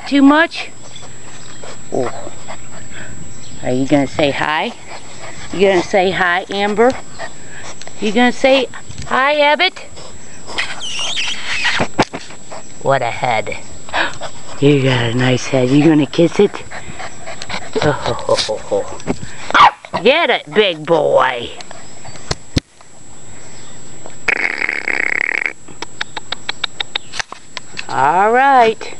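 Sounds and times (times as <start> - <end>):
puppy squealing: 10.6 - 11.8
sharp click: 25.8 - 27.9.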